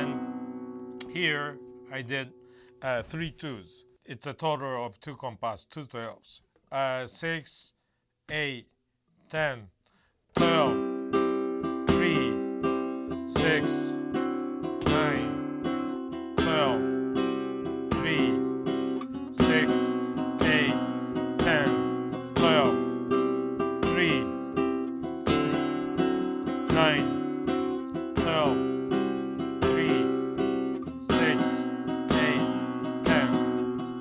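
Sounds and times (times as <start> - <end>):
flamenco guitar strumming: 0.0 - 3.3, 10.4 - 34.0.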